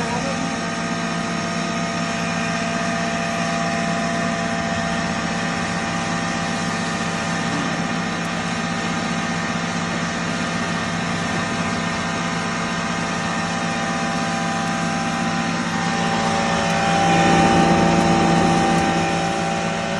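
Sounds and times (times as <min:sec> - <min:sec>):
flour mill machine hum: 0:00.0 - 0:19.9.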